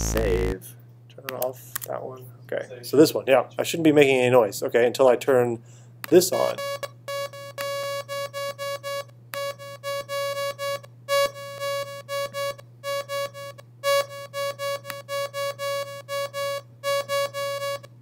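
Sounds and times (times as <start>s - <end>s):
synthesizer repeating single note: 0.0s - 0.6s
steady low hum: 0.0s - 1.2s.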